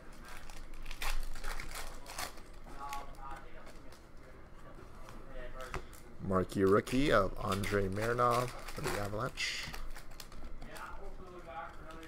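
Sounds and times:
cards rustling: 0:00.0 - 0:04.0, 0:05.0 - 0:12.0.

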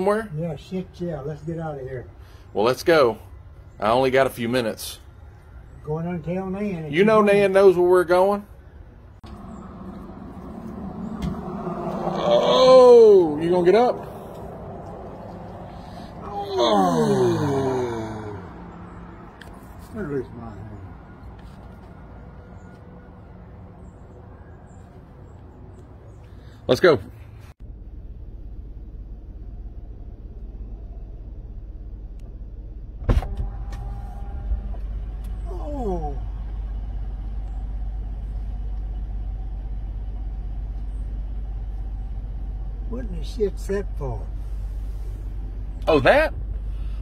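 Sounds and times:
engine idling hum: 0:05.0 - 0:26.6, 0:27.2 - 0:47.0
elderly man groaning with effort: 0:11.9 - 0:14.2, 0:15.8 - 0:18.7
old man saying oh: 0:12.1 - 0:13.4, 0:16.2 - 0:18.5.

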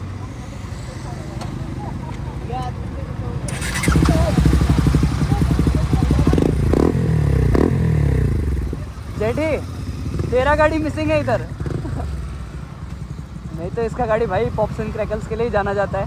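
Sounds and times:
motorcycle engine revving: 0:03.2 - 0:15.6.

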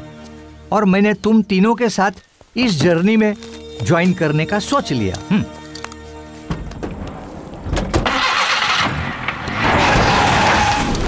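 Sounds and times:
car engine starting and running: 0:06.5 - 0:11.0.

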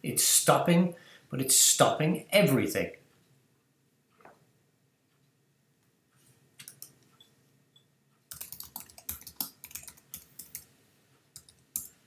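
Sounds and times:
typing on computer keyboard: 0:06.6 - 0:07.0, 0:08.3 - 0:10.7, 0:11.4 - 0:12.0.

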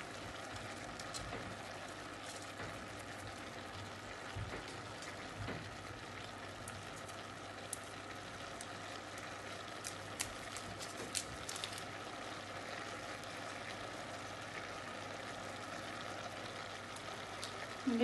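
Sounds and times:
food sizzling in a pot: 0:00.0 - 0:18.0.

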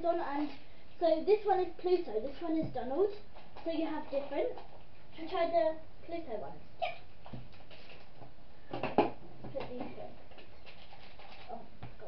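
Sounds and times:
packaging being handled: 0:10.3 - 0:11.6.

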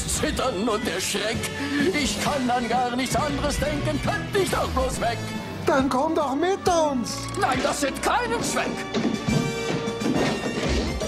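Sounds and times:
song accompaniment music: 0:00.0 - 0:11.0.

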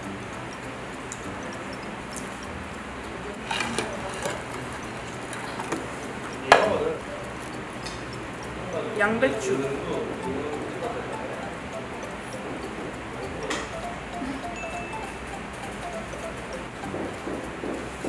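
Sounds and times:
restaurant room noise: 0:00.0 - 0:18.0.

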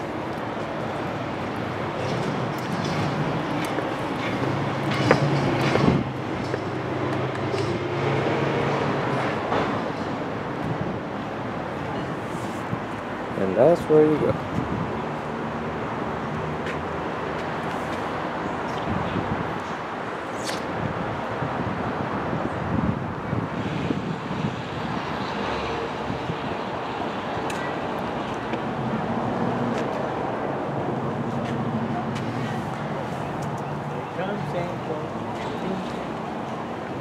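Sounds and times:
outdoor noise: 0:00.0 - 0:37.0.

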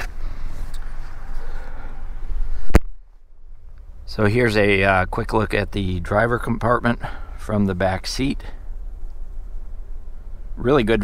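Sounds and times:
outside background noise: 0:00.0 - 0:11.0
rustling and body movement: 0:00.0 - 0:11.0.

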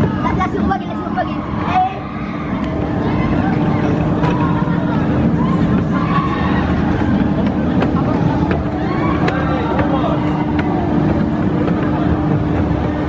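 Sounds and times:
people talking: 0:00.0 - 0:02.0, 0:07.3 - 0:12.4
roller coaster rumbling on track: 0:00.0 - 0:13.0
steady hum: 0:00.0 - 0:13.0.

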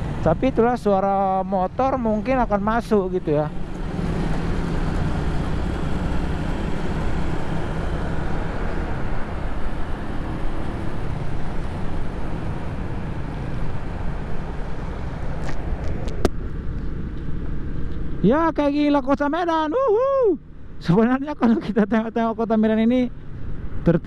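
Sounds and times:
wind and road noise: 0:00.0 - 0:24.0.

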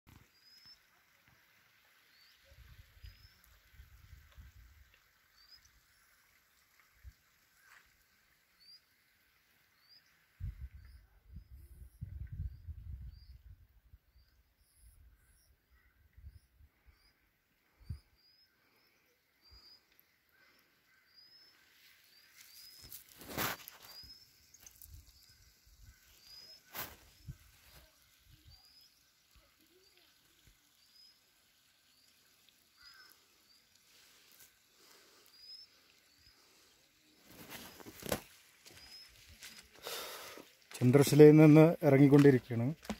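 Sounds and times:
small bird chirping: 0:17.8 - 0:39.8.

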